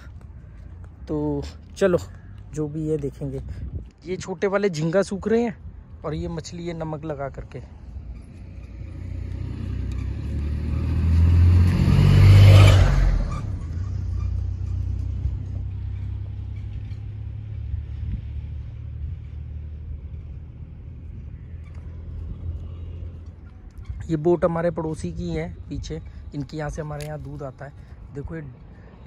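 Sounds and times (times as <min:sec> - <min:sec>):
motor vehicle passing: 0:07.6 - 0:24.0.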